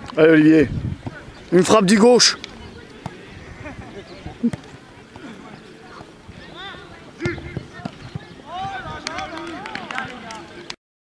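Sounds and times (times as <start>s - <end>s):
players shouting: 4.4s - 10.7s.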